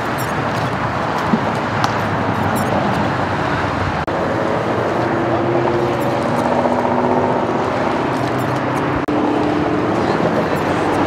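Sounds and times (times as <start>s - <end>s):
engine hum: 0.0s - 11.0s
freeway traffic roar: 0.0s - 11.0s.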